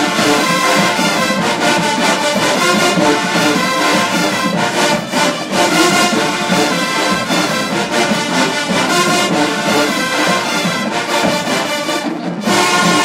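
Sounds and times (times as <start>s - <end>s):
brass chords: 0.0s - 13.0s
marching band playing: 0.0s - 13.0s.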